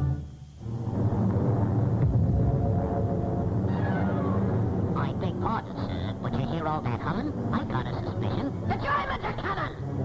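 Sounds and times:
ominous music: 0:00.0 - 0:08.9
warplanes droning hum: 0:00.0 - 0:10.0.

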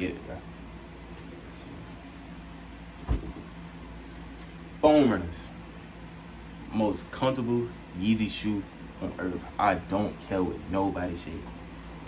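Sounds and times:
faint room hum: 0:00.0 - 0:12.0
short thump: 0:03.0 - 0:03.5.

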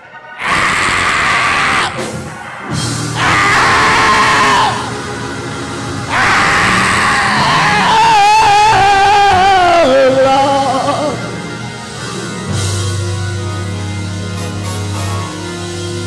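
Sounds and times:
church music: 0:00.0 - 0:16.0.

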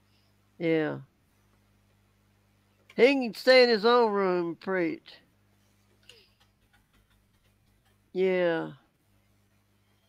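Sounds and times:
faint steady hum: 0:00.0 - 0:10.0
keyboard keys typing: 0:06.0 - 0:08.1.

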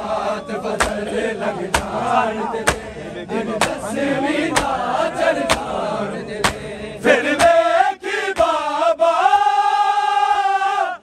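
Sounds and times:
rhythmic chest-beating: 0:00.0 - 0:09.7
men singing a lament: 0:00.0 - 0:11.0.

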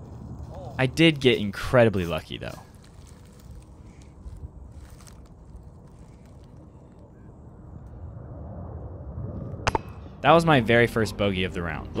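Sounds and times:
wind rumble on microphone: 0:00.0 - 0:01.7, 0:02.6 - 0:12.0.

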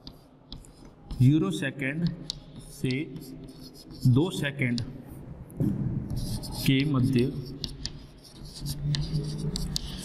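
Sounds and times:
chalk writing on chalkboard: 0:00.0 - 0:05.3, 0:06.0 - 0:10.0.

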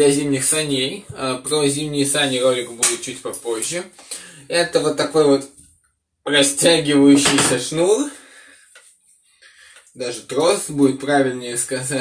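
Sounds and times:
man talking: 0:00.0 - 0:05.6, 0:06.3 - 0:08.4, 0:09.8 - 0:12.0.

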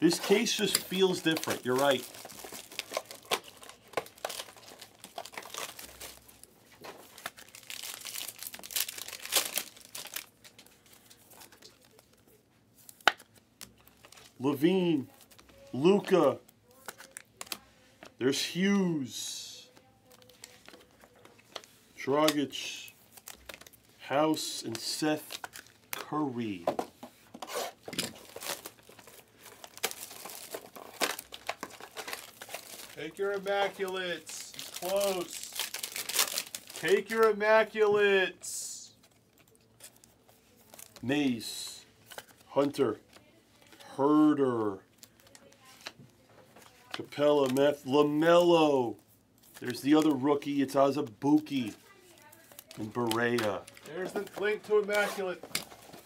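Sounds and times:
plastic wrapping crinkling: 0:00.0 - 0:14.5, 0:15.1 - 0:17.6, 0:19.6 - 0:21.8, 0:22.9 - 0:24.0, 0:24.7 - 0:26.6, 0:27.5 - 0:37.9, 0:39.0 - 0:43.9, 0:44.8 - 0:56.0
plastic wrap tearing: 0:00.1 - 0:12.2, 0:27.5 - 0:37.3.

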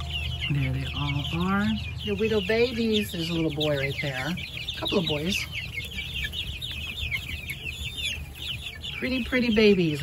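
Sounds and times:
chicks peeping: 0:00.0 - 0:10.0.

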